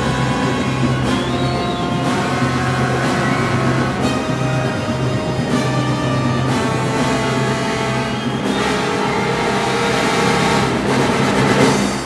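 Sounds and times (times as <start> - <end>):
symphony orchestra playing: 0.0 - 12.0.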